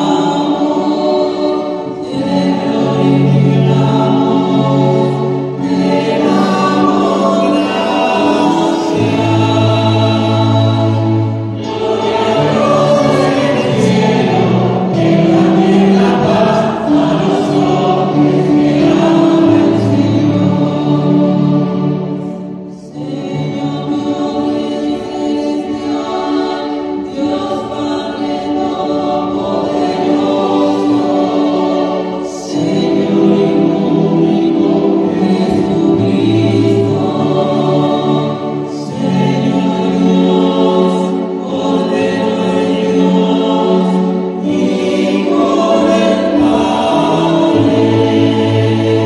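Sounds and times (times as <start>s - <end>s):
church choir singing: 0.0s - 49.0s
keyboard accompaniment: 0.0s - 49.0s.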